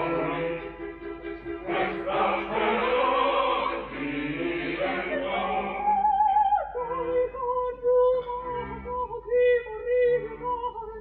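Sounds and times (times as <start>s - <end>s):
faint orchestral accompaniment: 0.0s - 11.0s
operatic soprano singing: 1.5s - 11.0s.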